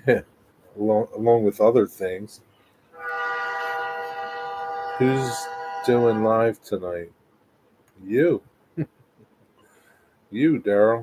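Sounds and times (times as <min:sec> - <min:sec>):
train horn chord: 0:03.0 - 0:06.5.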